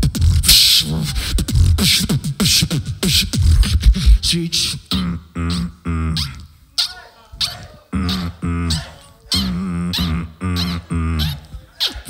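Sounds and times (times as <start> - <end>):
beatboxing into a microphone: 0.0 - 12.0.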